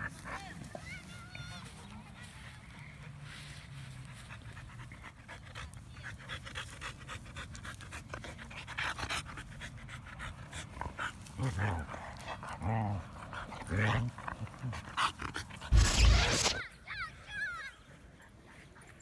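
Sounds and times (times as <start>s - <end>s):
dogs panting: 0.0s - 16.6s.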